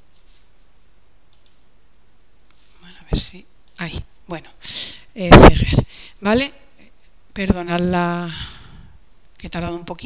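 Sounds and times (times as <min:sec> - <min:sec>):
low room hum and hiss: 0:00.0 - 0:10.0
computer mouse clicks: 0:01.3 - 0:01.7.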